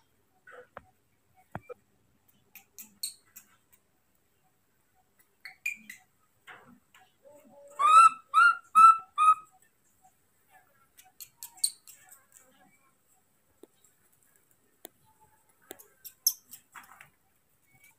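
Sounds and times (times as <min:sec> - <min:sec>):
baby monkey high-pitched calls: 0:07.7 - 0:09.6.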